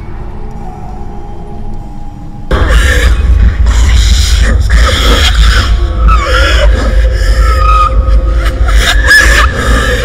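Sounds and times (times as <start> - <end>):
low rumbling drone: 0.0 - 10.0.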